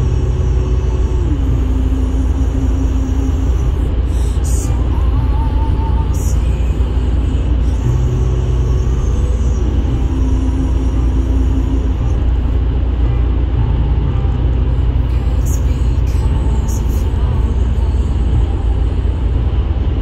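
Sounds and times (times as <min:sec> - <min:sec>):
faint hum: 0:00.0 - 0:20.0
tyre and engine rumble: 0:00.0 - 0:20.0.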